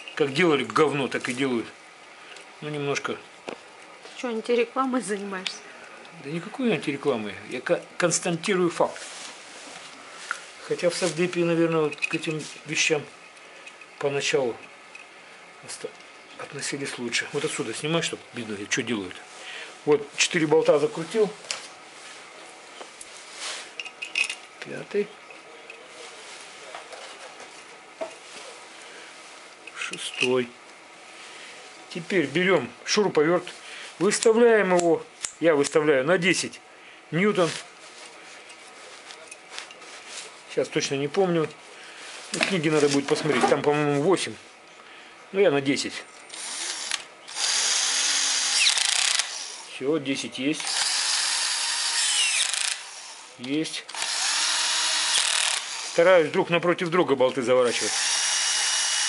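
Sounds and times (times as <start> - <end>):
cordless drill driving bolt: 46.3 - 49.6, 50.6 - 53.2, 53.9 - 56.0, 57.7 - 59.0.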